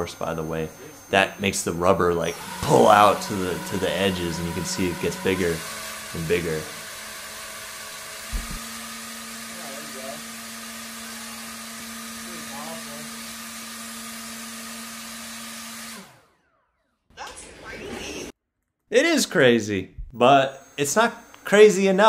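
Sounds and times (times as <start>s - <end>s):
electric motor spinning propeller: 0.0s - 17.0s.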